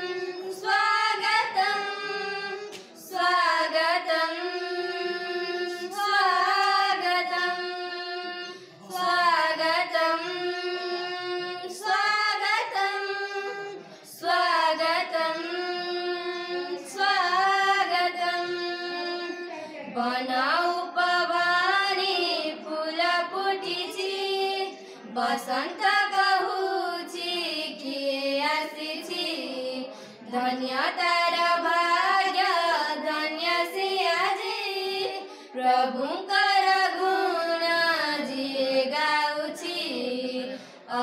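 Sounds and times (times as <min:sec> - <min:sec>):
girls singing together: 0:00.0 - 0:41.0.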